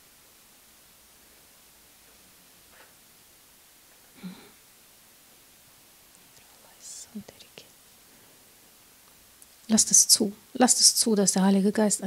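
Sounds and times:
woman whispering: 6.3 - 7.8.

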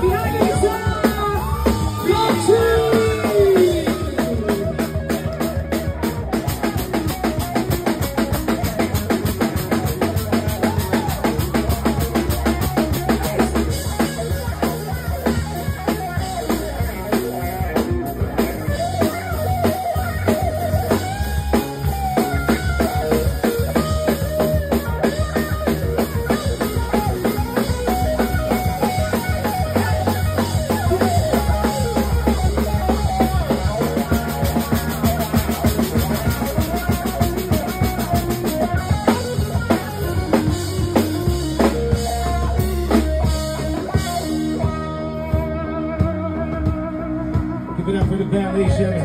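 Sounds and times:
drum kit beat: 0.0 - 49.0
electric guitar lead: 0.0 - 49.0.

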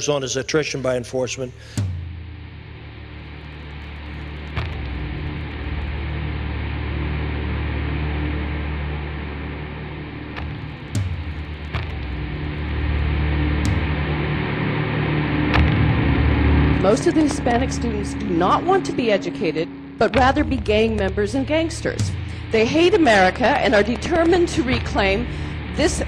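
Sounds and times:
low droning background music: 0.0 - 26.0.

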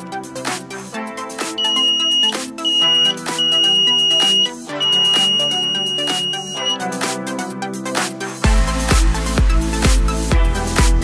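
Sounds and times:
electronic background music: 0.0 - 11.0
piezo buzzer high-pitched beep: 1.5 - 6.9.

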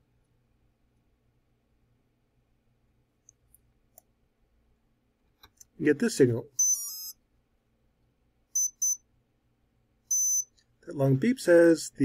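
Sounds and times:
high-pitched motor beeps: 6.6 - 7.2, 8.6 - 9.0, 10.1 - 10.5.

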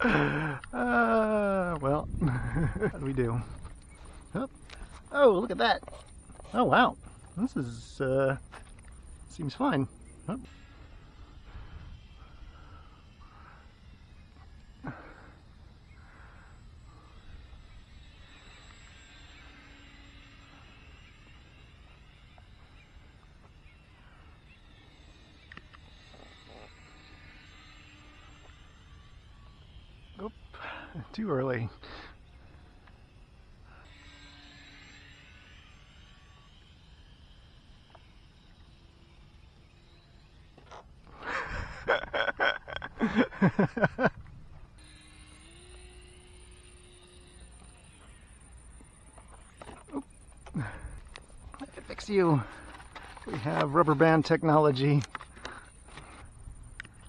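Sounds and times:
model plane motor whine: 0.0 - 41.9, 43.0 - 57.0
wind rumble on microphone: 1.8 - 3.7.

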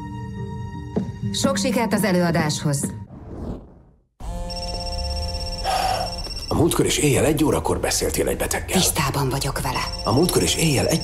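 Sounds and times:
telephone ringing: 4.2 - 11.0.

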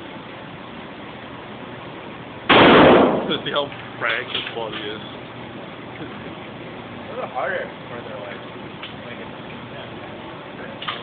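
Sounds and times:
gunshot ringing indoors: 2.5 - 3.4.

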